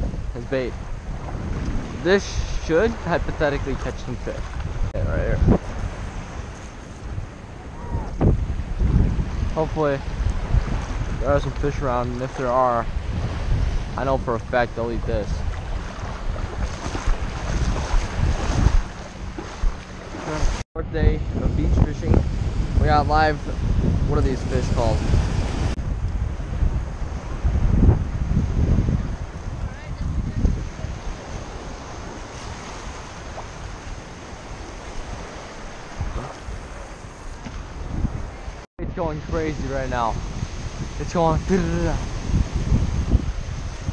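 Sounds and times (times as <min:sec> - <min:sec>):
wind buffeting microphone: 0:00.0 - 0:43.9
small waves in shallow surf: 0:05.5 - 0:14.2, 0:15.0 - 0:20.6, 0:25.0 - 0:38.7, 0:39.6 - 0:43.9.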